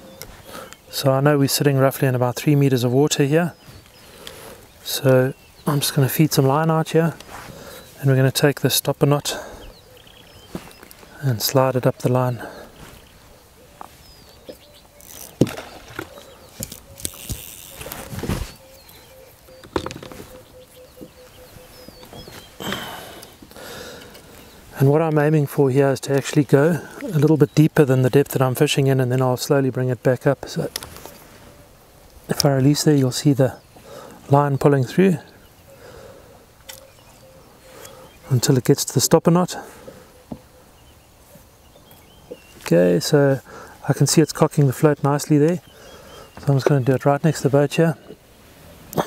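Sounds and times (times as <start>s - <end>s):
open water ambience: 0.0s - 29.2s, 29.8s - 49.0s
faint bird chirps: 9.3s - 24.8s, 33.5s - 38.6s, 39.6s - 42.7s, 44.9s - 46.8s
fishing line handling knocks and rustles: 13.8s - 20.4s.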